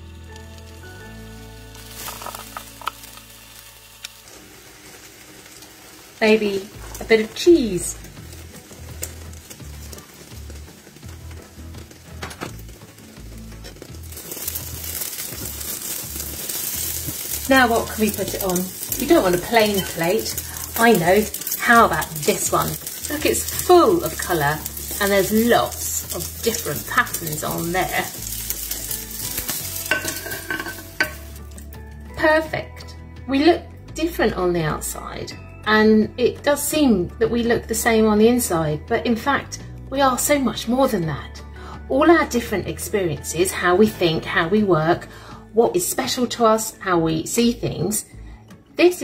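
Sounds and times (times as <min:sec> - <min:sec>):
omelette sizzling in a frying pan: 0:00.0 - 0:32.1.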